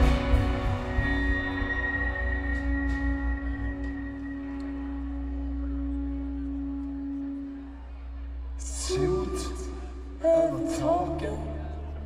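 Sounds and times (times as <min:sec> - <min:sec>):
rock band sustained note: 0:00.0 - 0:10.3
low bass drone: 0:00.0 - 0:12.0.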